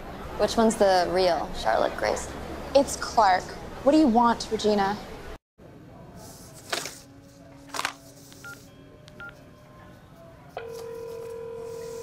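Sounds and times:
phone ringing tone: 10.6 - 12.0.

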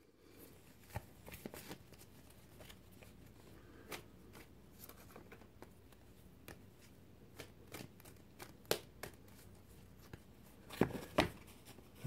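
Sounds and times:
cards flicking and clicking: 7.3 - 11.4.

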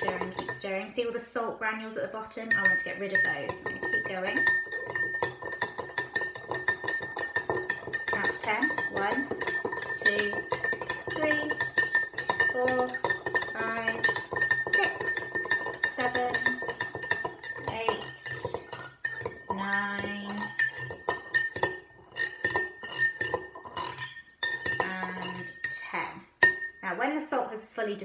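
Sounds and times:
spoon clinking against glass: 0.0 - 0.8, 2.5 - 25.8, 26.4 - 26.8.

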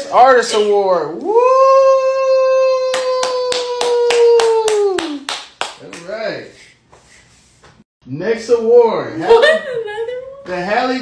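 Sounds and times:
person cheering woo: 1.2 - 5.3
hands clapping rhythmically: 2.9 - 6.2.

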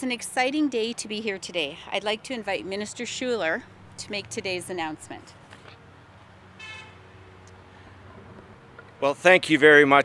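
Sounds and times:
low outdoor background hum: 0.0 - 10.0
faint car horn toot: 6.6 - 7.0.

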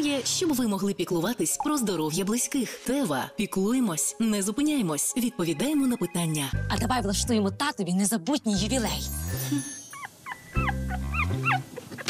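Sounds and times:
background music: 0.0 - 11.8
puppy yipping and whimpering: 9.6 - 12.0.

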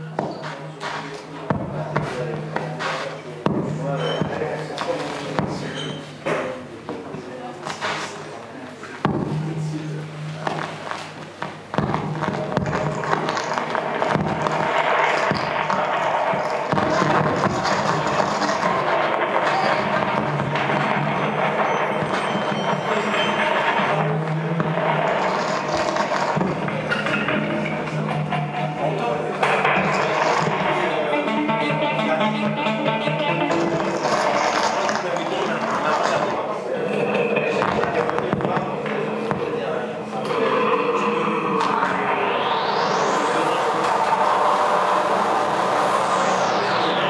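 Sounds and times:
experimental noise music: 0.0 - 47.0
low drones: 8.2 - 47.0.

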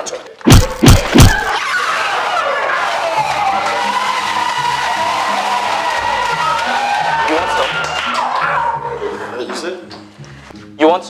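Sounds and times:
people screaming and shouting: 0.5 - 9.3.

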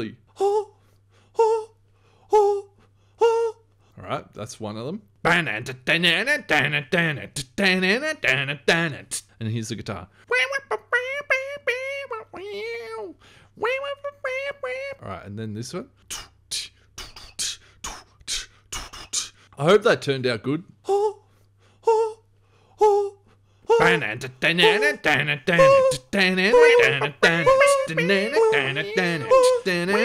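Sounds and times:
man beatboxing: 5.3 - 8.7, 16.1 - 19.4, 23.8 - 30.0
man singing clipped vocal hits: 23.8 - 30.0.

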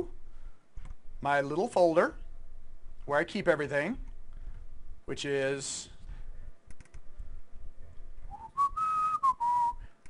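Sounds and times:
person whistling: 8.3 - 10.0.

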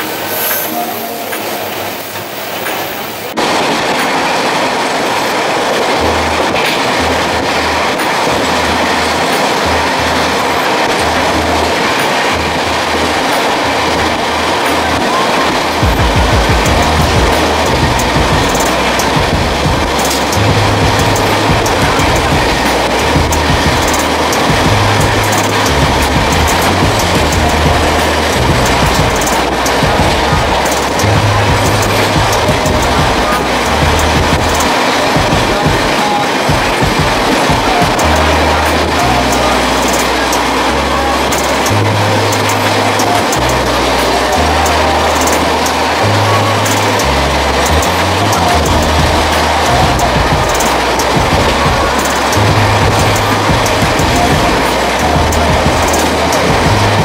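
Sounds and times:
train running at speed: 0.0 - 57.0
wheel clicks on rails: 2.4 - 57.0
faint music bass line: 5.7 - 57.0.

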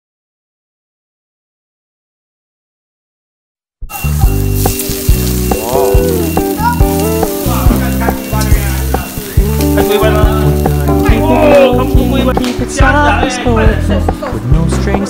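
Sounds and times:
meat sizzling on charcoal grill: 3.9 - 15.0
pop music with bass line: 4.0 - 15.0.

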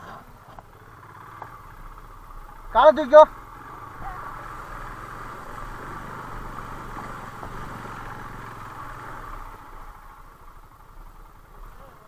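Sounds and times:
motorcycle engine low speed: 0.0 - 12.0.

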